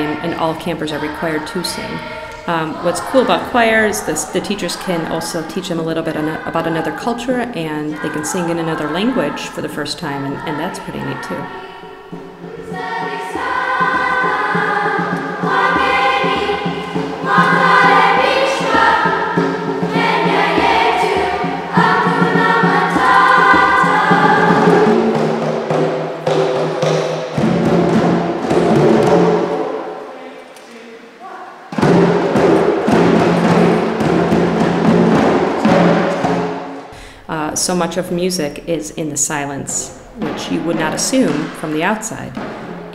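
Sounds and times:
djembes and drums playing: 0.0s - 30.1s, 31.7s - 37.9s, 39.3s - 42.9s
children's choir singing: 0.0s - 36.9s, 39.5s - 42.9s.

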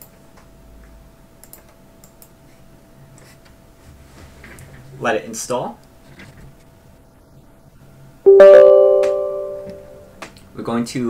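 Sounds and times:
faint steady hum: 0.0s - 11.0s
computer mouse clicks: 1.4s - 2.4s.

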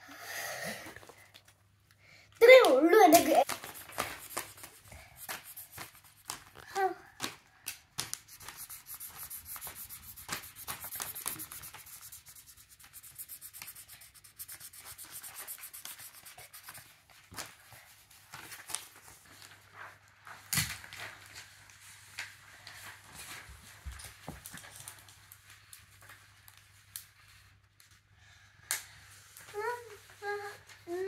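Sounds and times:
marker scribbling on paper: 3.4s - 6.3s, 8.3s - 16.9s.

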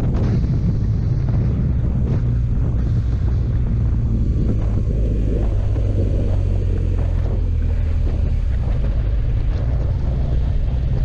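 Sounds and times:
motorcycle engine cruising: 0.0s - 11.0s
wind noise on microphone: 0.0s - 11.0s.

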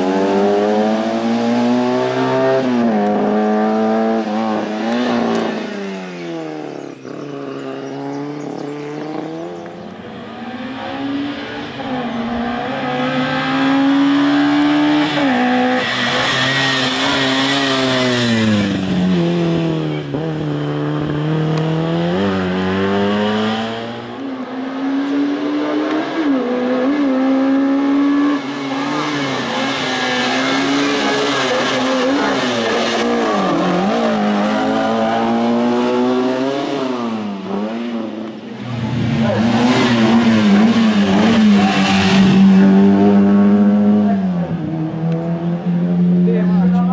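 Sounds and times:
race car engine revving: 0.0s - 46.9s.

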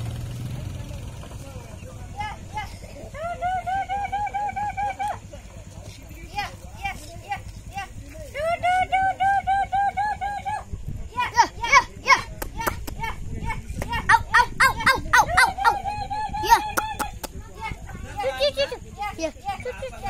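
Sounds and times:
woman calling chickens: 14.1s - 17.3s.

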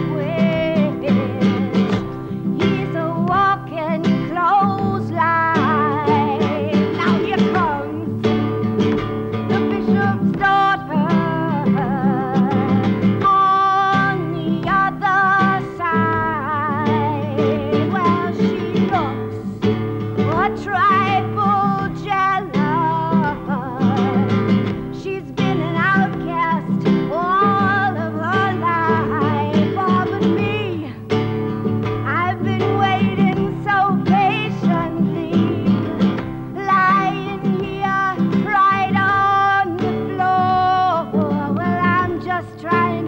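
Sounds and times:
strummed guitar: 0.0s - 43.0s
woman singing with vibrato: 0.0s - 43.0s.

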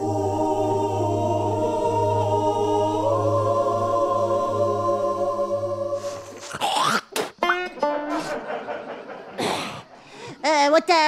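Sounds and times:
plucked guitar: 7.4s - 8.4s.

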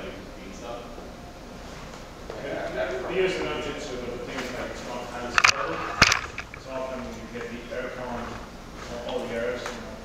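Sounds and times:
speech: 0.0s - 1.0s, 2.3s - 5.9s, 6.6s - 10.0s.

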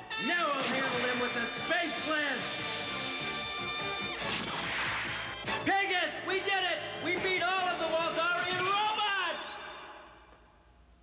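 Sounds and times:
cartoon background music: 0.0s - 8.9s
pitch-gliding sound effects: 3.9s - 5.6s
noisy crash: 4.1s - 5.6s.

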